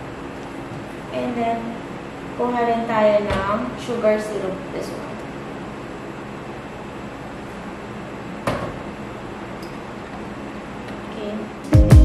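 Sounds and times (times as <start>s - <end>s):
steady background hiss: 0.0s - 11.8s.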